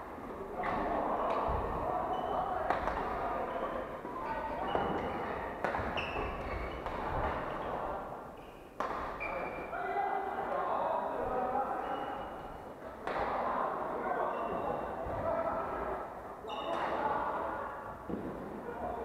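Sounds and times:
racket hitting shuttlecock: 5.6 - 7.4, 8.8 - 9.3.

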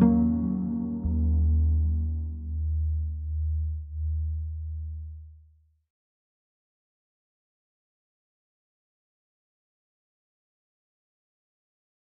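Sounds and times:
deep bass note ringing: 0.0 - 5.4.

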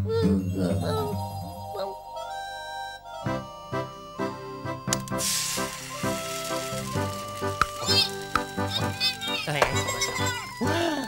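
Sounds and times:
background music with steady beat: 2.6 - 11.0
egg sizzling in a pan: 5.0 - 10.5.

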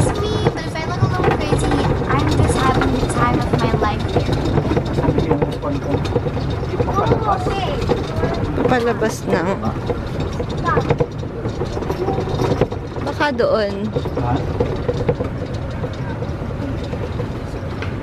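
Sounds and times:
golf cart rumbling over cobblestones: 0.0 - 18.0
people's voices: 0.0 - 18.0.

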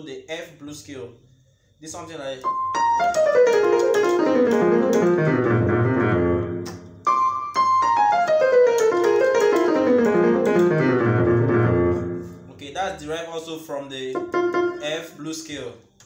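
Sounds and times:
piano descending blues run: 2.4 - 12.6, 14.2 - 15.0.

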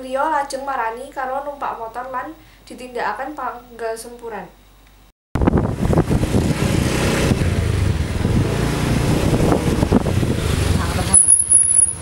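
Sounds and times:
motor scooter engine running: 5.4 - 12.0
wind noise on microphone: 5.4 - 12.0.

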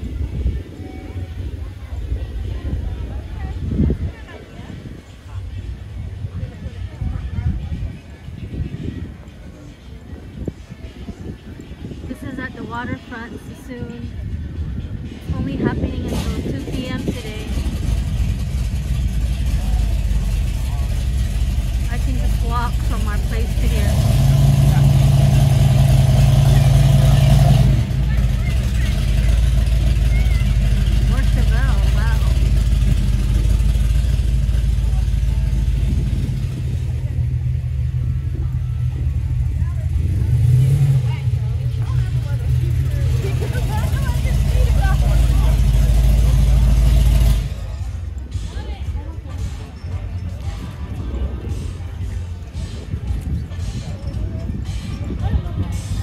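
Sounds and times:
faint crowd chatter: 0.0 - 56.0
car engine rumbling and revving: 11.4 - 56.0.

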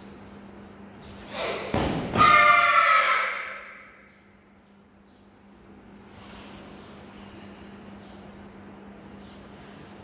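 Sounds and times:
thud on mat: 1.7 - 2.2
children shouting together: 2.2 - 3.9.

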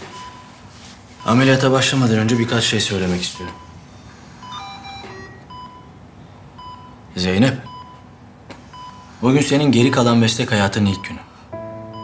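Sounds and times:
patient monitor beeping: 0.0 - 12.0
soft background music: 9.4 - 12.0.

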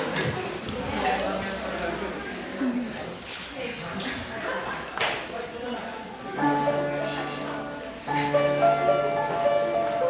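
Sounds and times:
upright piano chords: 6.3 - 10.0.

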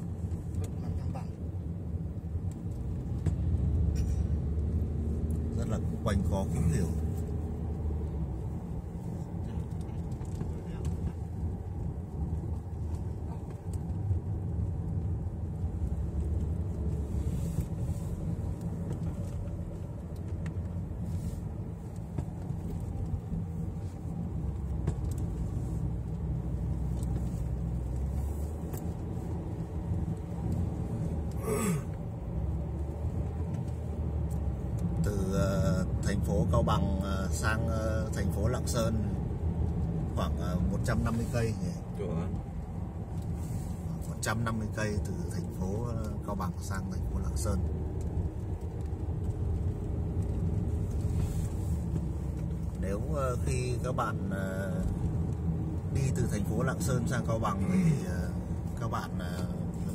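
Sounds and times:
car cabin road rumble: 0.0 - 59.9.

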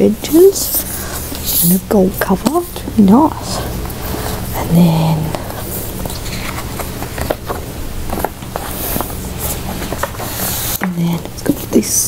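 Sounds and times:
low room hum: 0.0 - 12.0
book rustling and tapping: 5.2 - 11.7.

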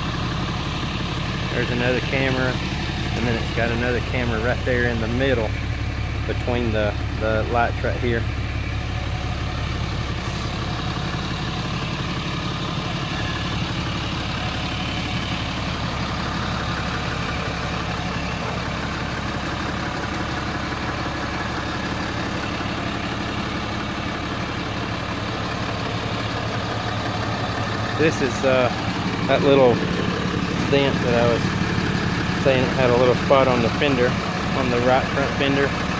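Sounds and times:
truck engine idling: 0.0 - 35.9.

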